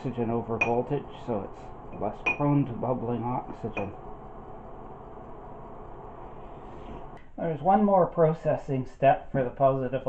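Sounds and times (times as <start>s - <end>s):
low room hum and hiss: 0.0s - 10.0s.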